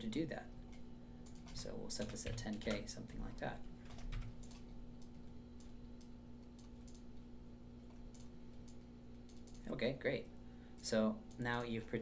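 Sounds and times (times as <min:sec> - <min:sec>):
faint low hum: 0:00.0 - 0:12.0
keyboard and mouse clicks: 0:03.8 - 0:07.1, 0:07.8 - 0:09.7.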